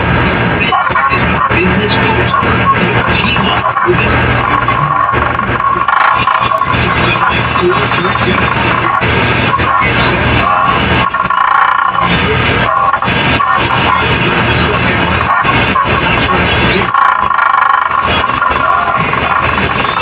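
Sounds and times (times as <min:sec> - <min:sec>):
harsh dense noise: 0:00.0 - 0:20.0
steady buzzing: 0:00.0 - 0:20.0.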